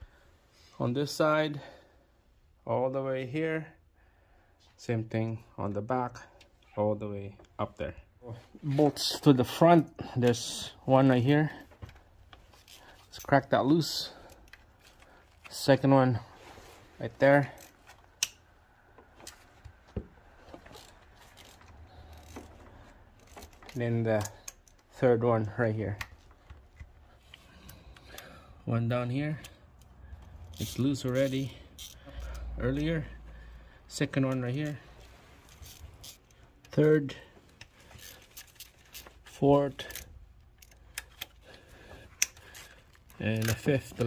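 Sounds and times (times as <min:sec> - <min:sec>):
ratcheting wrench clicks: 0:20.7 - 0:22.6, 0:23.2 - 0:24.9, 0:29.4 - 0:32.5, 0:35.4 - 0:36.8, 0:37.6 - 0:39.1, 0:39.8 - 0:41.4.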